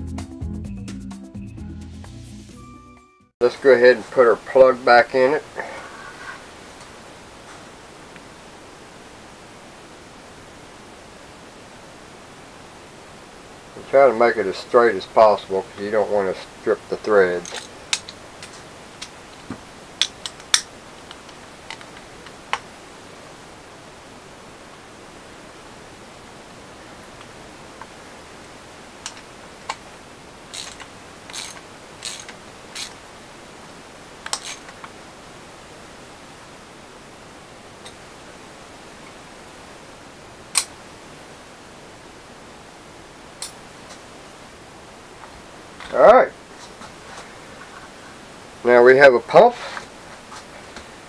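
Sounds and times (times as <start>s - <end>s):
faint steady hiss: 3.4s - 51.0s
hand tool clicking on metal: 17.4s - 18.2s, 30.5s - 33.0s, 34.2s - 34.7s.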